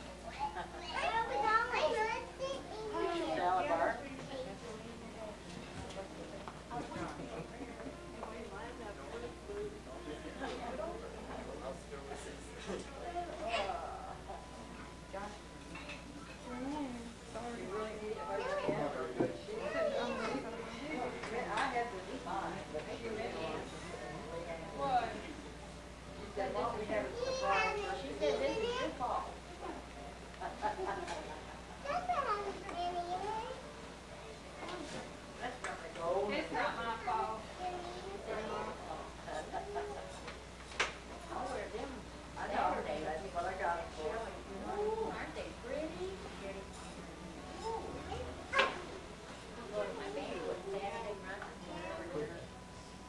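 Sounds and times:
children chattering and calling out: 0:00.0 - 0:04.7, 0:18.2 - 0:21.2, 0:27.0 - 0:29.4, 0:31.8 - 0:35.0, 0:36.8 - 0:40.3, 0:47.4 - 0:50.8
child's high-pitched voice: 0:00.4 - 0:03.2, 0:31.8 - 0:33.6.

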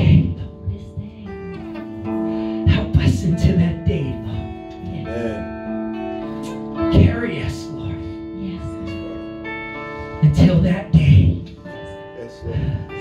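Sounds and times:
electric guitar strummed chords: 0:00.0 - 0:13.0.

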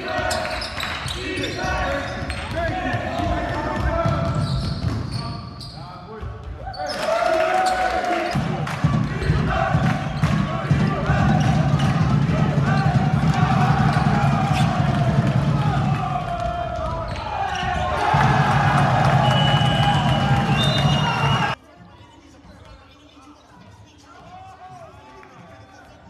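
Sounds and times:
basketball bouncing on court: 0:01.7 - 0:05.3, 0:08.4 - 0:20.0
players calling out: 0:06.6 - 0:21.6.

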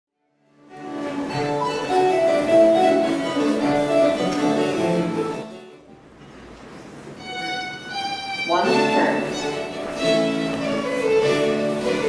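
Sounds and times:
baroque ensemble playing dance tune: 0:00.5 - 0:12.0.

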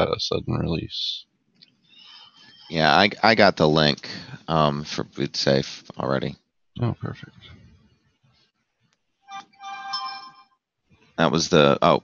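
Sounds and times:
electronic chime: 0:09.3 - 0:10.6.

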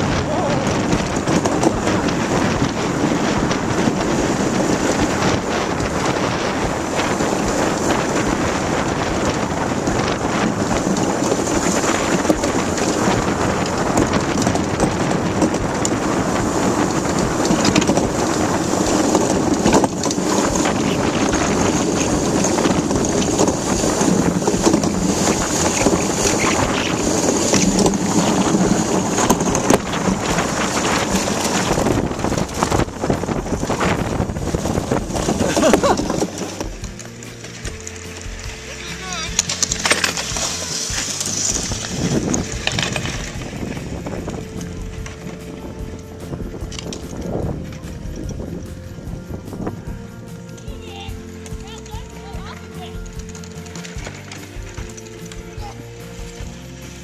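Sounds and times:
wind rushing over microphone: 0:00.0 - 0:57.0
steel runners hissing over ice: 0:00.5 - 0:57.0.

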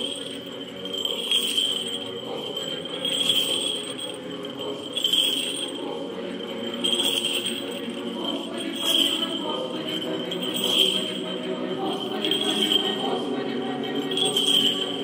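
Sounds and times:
censer bells jingling: 0:00.0 - 0:15.0
church choir singing a chant: 0:00.0 - 0:15.0.

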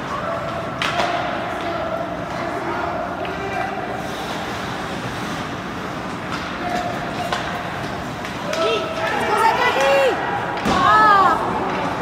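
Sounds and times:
skates scraping ice: 0:00.0 - 0:12.0.

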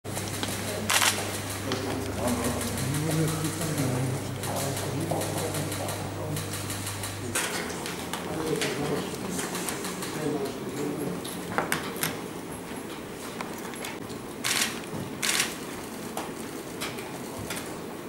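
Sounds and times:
people talking indistinctly: 0:00.4 - 0:11.4.

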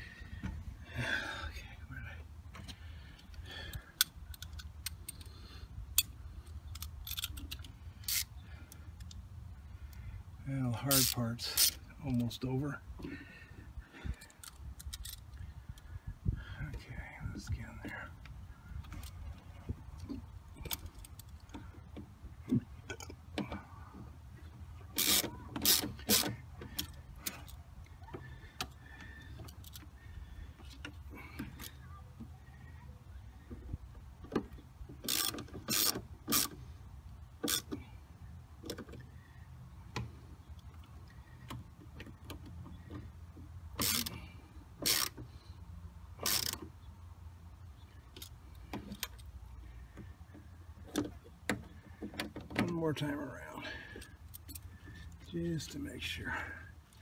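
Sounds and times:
ratchet wrench clicking: 0:06.7 - 0:08.3, 0:25.0 - 0:26.9, 0:35.0 - 0:36.6, 0:43.8 - 0:44.2, 0:44.8 - 0:45.2, 0:46.2 - 0:46.6.

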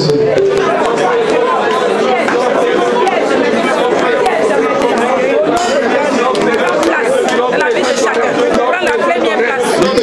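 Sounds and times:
congregation praying aloud: 0:00.0 - 0:10.0.

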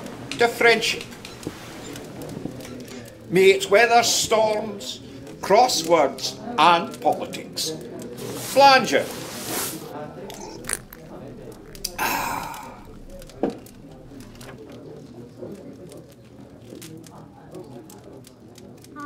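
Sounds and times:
faint clicks: 0:00.0 - 0:08.2, 0:10.2 - 0:19.0
person sighing: 0:11.8 - 0:13.0.

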